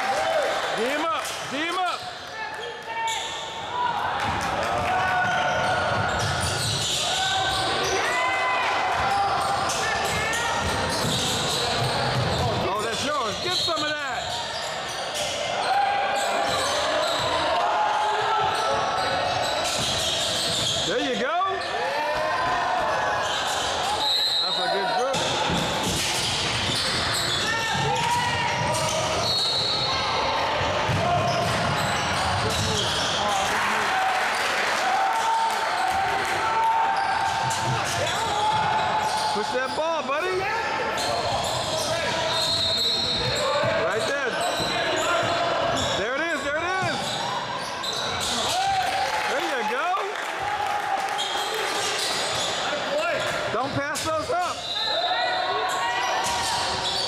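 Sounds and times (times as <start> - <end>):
sneakers squeaking: 1.3 - 33.5, 35.4 - 48.9, 50.4 - 57.0.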